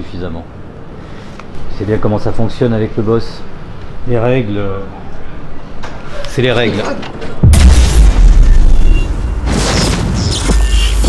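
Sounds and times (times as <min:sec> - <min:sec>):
deep boom rumble: 0:07.4 - 0:11.0.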